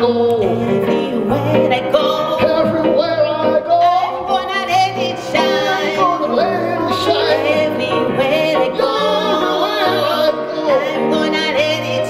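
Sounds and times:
electronic keyboard accompaniment: 0.0 - 12.0
gospel singing: 0.0 - 12.0.

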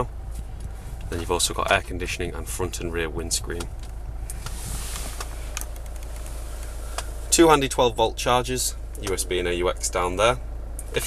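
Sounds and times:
low hum in car cabin: 0.0 - 11.0.

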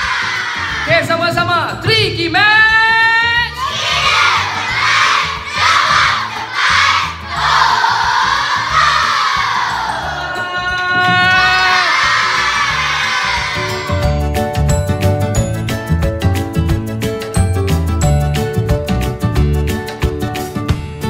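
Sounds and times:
children shouting and cheering: 0.0 - 0.9, 3.4 - 14.4.

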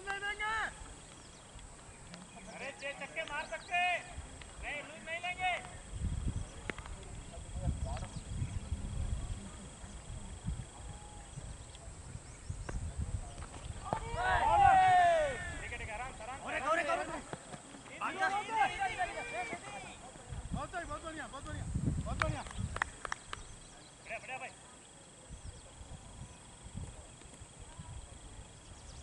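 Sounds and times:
distant voices calling out: 13.1 - 29.0
players shouting: 13.8 - 20.3.

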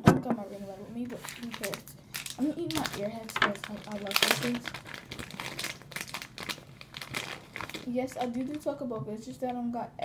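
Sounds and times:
plastic candy wrapper crinkling: 1.1 - 8.8.

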